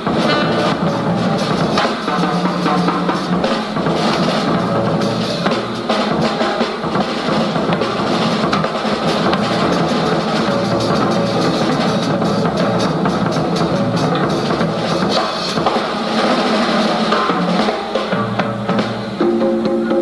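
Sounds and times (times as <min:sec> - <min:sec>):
jazz drum kit playing: 0:00.0 - 0:20.0.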